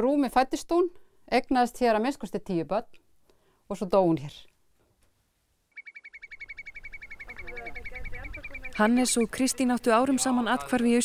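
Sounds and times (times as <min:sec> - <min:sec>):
bird trilling: 0:05.7 - 0:09.6.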